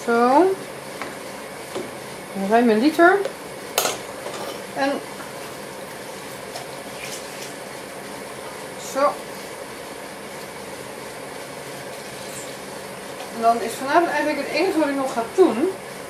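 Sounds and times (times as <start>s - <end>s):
faint appliance hum: 0.0s - 16.0s.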